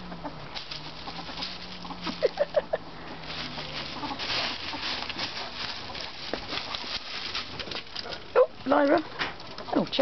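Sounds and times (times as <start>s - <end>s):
ferrets dooking: 0.0s - 10.0s
light scuffling: 0.0s - 10.0s.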